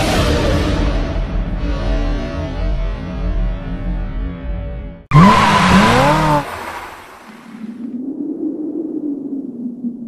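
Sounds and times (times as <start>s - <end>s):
music: 0.0s - 5.1s.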